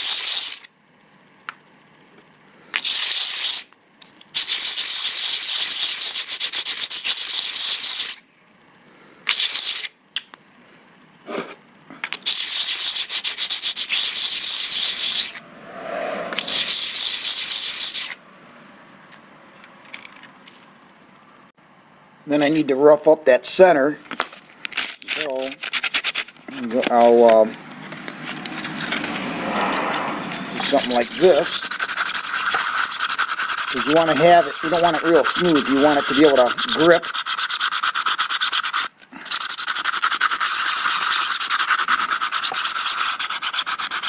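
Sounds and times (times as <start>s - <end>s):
metal scratching on sandpaper: 0.0s - 0.7s, 2.8s - 3.7s, 4.4s - 8.2s, 9.3s - 9.9s, 12.2s - 15.4s, 16.4s - 18.2s, 24.8s - 44.0s.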